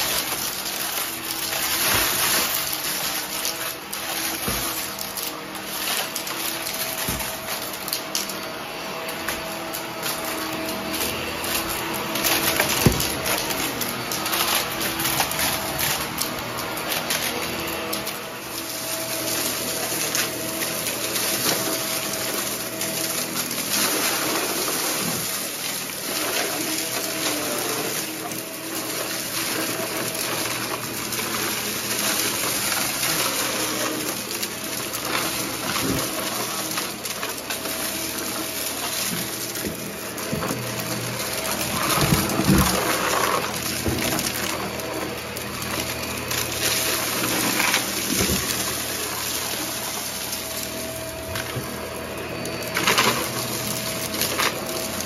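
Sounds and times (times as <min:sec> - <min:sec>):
debris crackling in vacuum: 0:00.0 - 0:55.0
upright vacuum cleaner running: 0:00.0 - 0:55.0.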